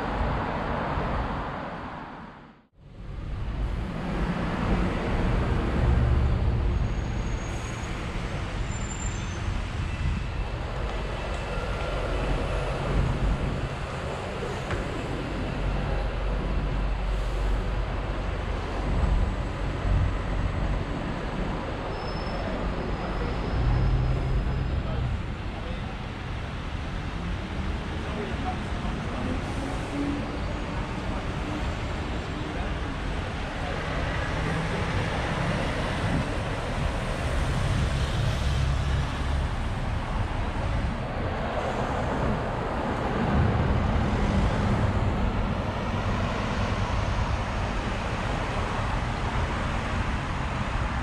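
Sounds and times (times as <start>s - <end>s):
rumble of passing traffic: 0.0s - 51.0s.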